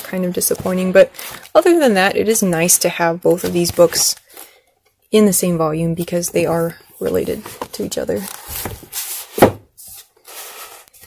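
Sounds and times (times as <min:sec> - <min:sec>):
book bumping on wooden shelf: 0:09.4 - 0:09.7.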